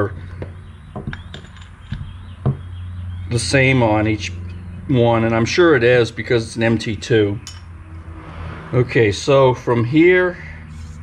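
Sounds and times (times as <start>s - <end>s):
metal parts clicking on wood: 0.3s - 2.2s.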